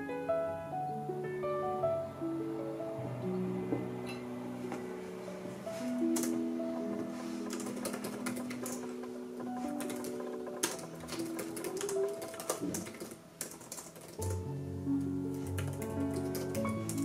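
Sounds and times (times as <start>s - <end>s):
soft piano music: 0.0s - 17.0s
laptop keyboard typing: 6.1s - 14.6s, 15.3s - 17.0s.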